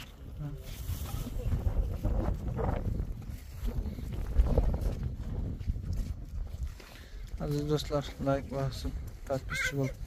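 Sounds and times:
wind buffeting microphone: 0.0s - 10.0s
footsteps on dry dirt: 0.8s - 10.0s.

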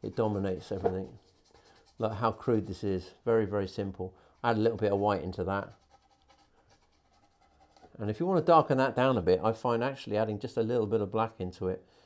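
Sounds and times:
paintbrush scratching: 0.0s - 8.0s.

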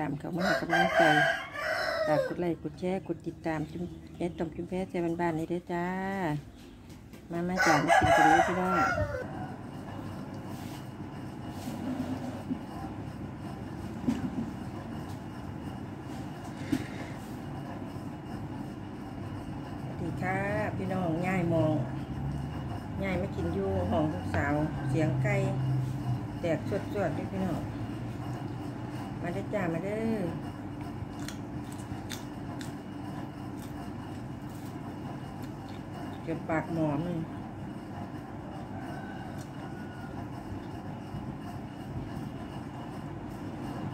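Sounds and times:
woman speaking: 0.0s - 6.6s, 7.3s - 9.3s, 19.9s - 22.0s, 23.0s - 25.8s, 26.4s - 27.8s, 29.2s - 30.5s, 36.2s - 37.4s
low rumbling background noise: 0.0s - 43.9s
raw vegetables crunching: 30.8s - 36.4s.

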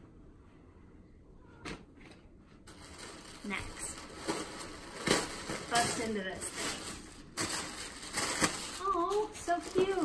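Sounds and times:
tissue paper rustling: 2.7s - 10.0s.

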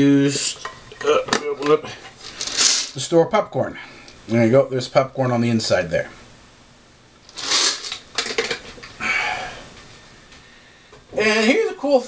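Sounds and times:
tin rustling and scraping: 2.1s - 3.0s, 7.3s - 8.9s.

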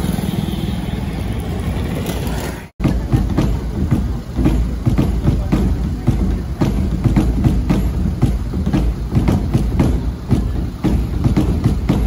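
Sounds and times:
kettle drums beaten by hand: 2.8s - 12.0s.

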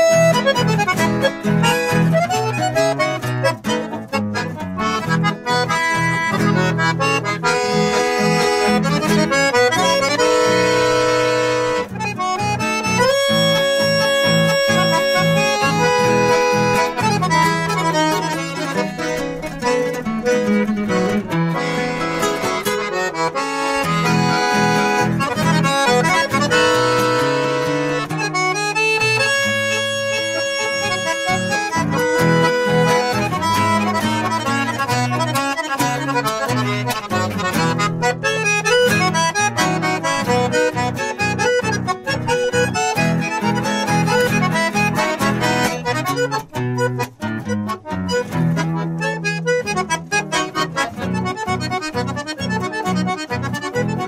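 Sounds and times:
accordion melody: 0.0s - 54.0s
acoustic guitar accompaniment: 0.0s - 54.0s.

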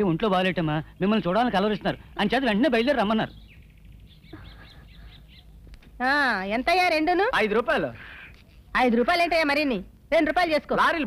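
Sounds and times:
low background hum: 0.0s - 11.0s
bird chirping: 0.1s - 7.0s.

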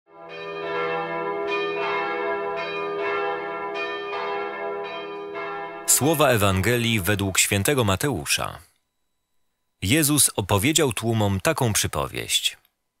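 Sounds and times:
bells chiming: 0.2s - 7.4s.

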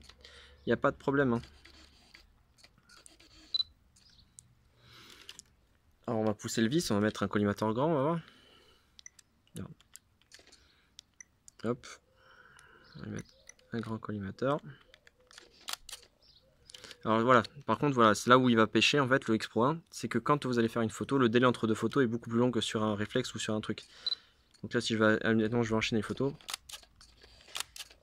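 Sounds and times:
camera focus beep: 3.0s - 3.8s, 24.0s - 24.2s
faint camera click: 14.8s - 17.5s, 26.4s - 28.0s.

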